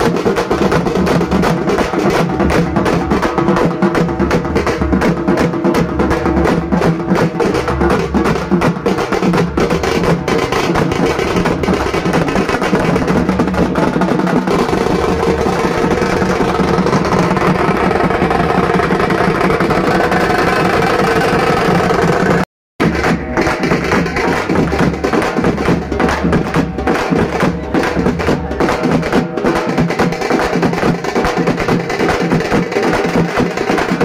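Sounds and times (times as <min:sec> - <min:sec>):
drum-led percussion music: 0:00.0 - 0:34.0.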